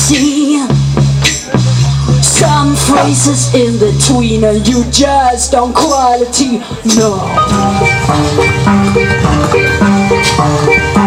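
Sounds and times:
rock band playing: 7.0s - 11.0s.

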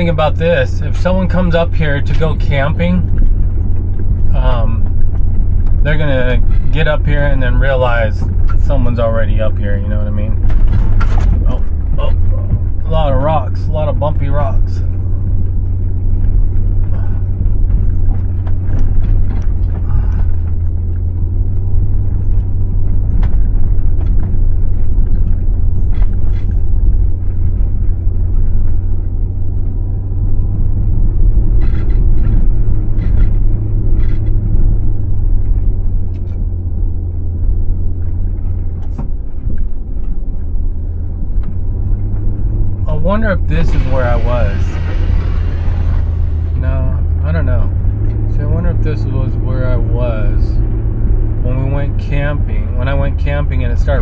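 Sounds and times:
vehicle engine rumbling: 0.0s - 54.0s
knocks and rattles: 0.8s - 13.5s, 14.4s - 48.4s.

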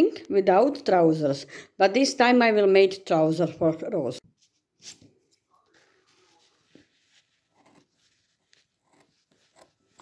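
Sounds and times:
scissors snipping fabric: 8.6s - 10.0s.

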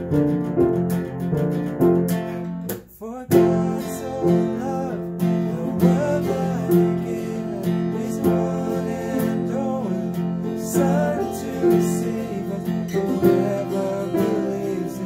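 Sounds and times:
acoustic guitar strumming: 0.0s - 15.0s
men singing worship song: 3.0s - 15.0s.

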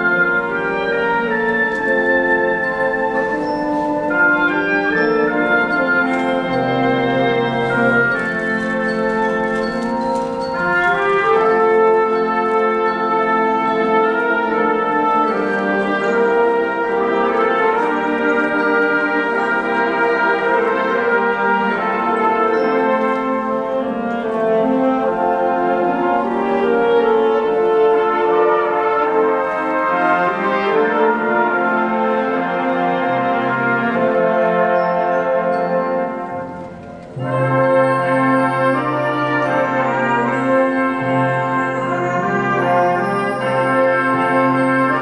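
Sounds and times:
wind band playing held chords: 0.0s - 45.0s.

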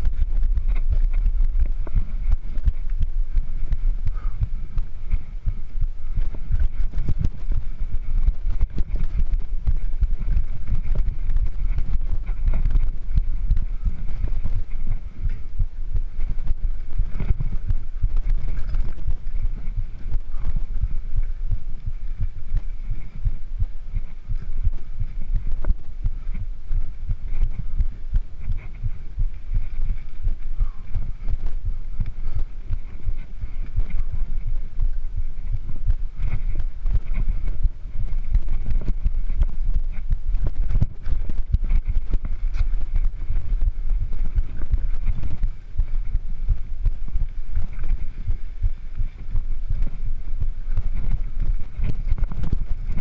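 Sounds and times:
mountain bike rolling on dirt: 0.0s - 53.0s.

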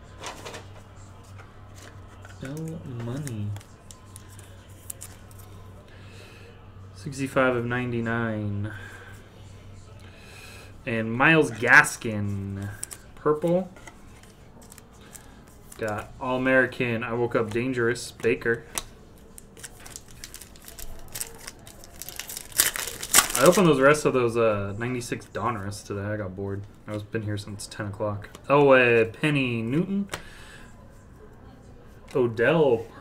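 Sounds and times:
handling cards in plastic sleeves: 0.2s - 5.7s, 11.4s - 24.1s
plastic wrapper crinkling and tearing: 1.8s - 5.5s, 19.2s - 24.0s.

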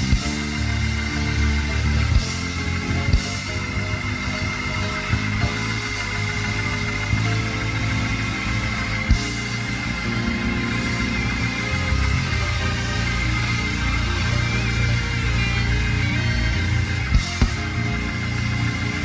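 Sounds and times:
deep bass line: 0.0s - 19.0s
sustained keyboard chords: 0.0s - 19.0s.

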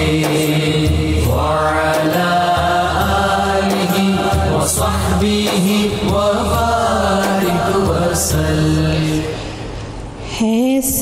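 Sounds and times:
solo devotional singing: 0.0s - 9.5s.

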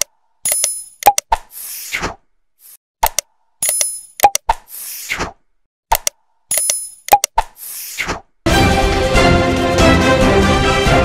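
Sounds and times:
sharp clicks: 0.0s - 1.4s, 3.0s - 4.7s, 5.9s - 7.6s.

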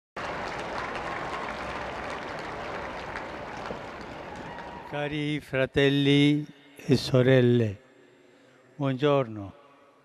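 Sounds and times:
crowd applauding: 0.2s - 5.2s.

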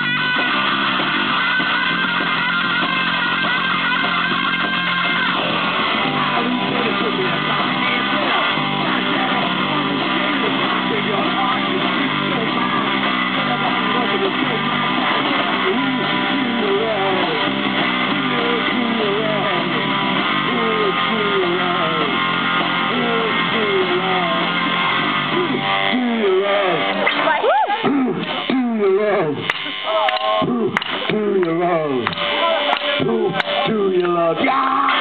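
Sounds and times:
punk rock band playing live: 0.0s - 35.0s.

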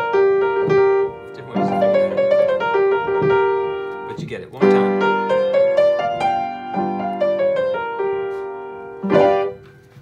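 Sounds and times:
upright piano playing blues: 0.0s - 10.0s.

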